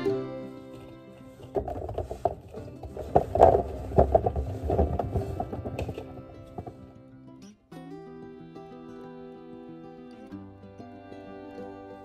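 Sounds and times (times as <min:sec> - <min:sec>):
background music: 0:00.0 - 0:02.2
grapes knocking into plastic bin: 0:01.5 - 0:06.9.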